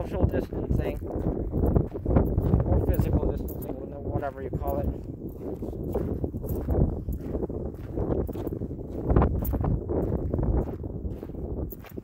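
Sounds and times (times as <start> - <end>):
footsteps with rustling: 0.6 - 12.0.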